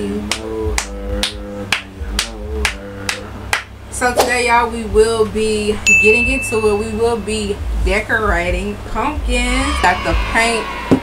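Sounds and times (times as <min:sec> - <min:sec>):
held chords: 0:00.0 - 0:09.9
clap-like percussive beat: 0:00.2 - 0:04.6.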